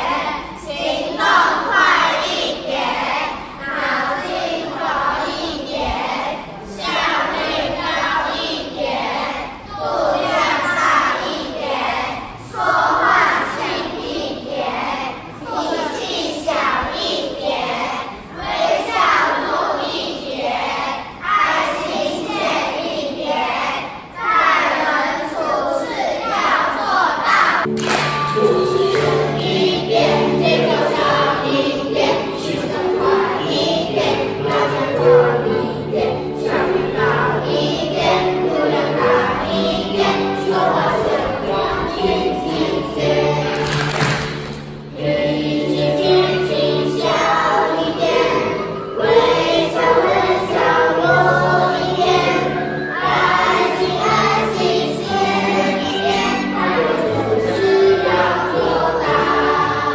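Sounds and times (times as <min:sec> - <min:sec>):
children singing in unison: 0:00.0 - 0:59.9
instrumental backing music: 0:27.7 - 0:59.9.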